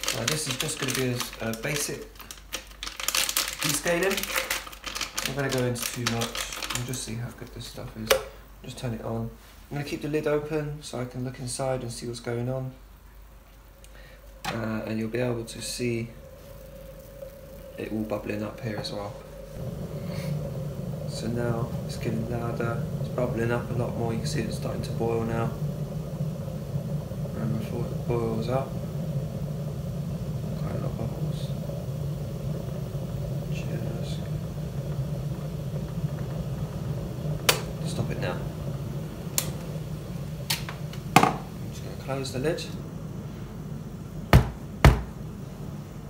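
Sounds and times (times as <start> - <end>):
kettle water rumbling and bubbling: 0.0 - 46.0
steady low hum: 0.0 - 46.0.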